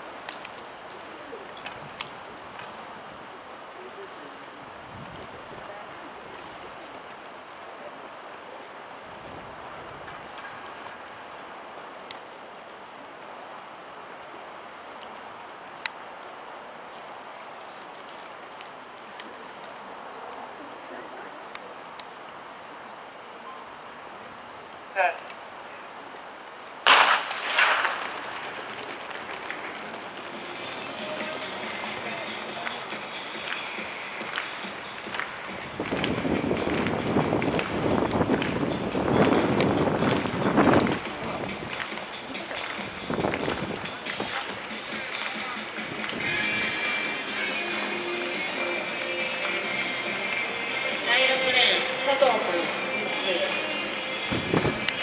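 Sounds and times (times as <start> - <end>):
low background noise: 0.0 - 55.0
steady background hiss: 0.0 - 55.0
starting gun crack: 26.8 - 38.6.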